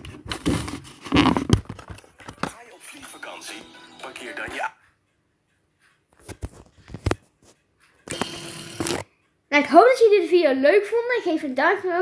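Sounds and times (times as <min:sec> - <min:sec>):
rustling and scraping: 0:00.0 - 0:02.6, 0:05.8 - 0:09.0.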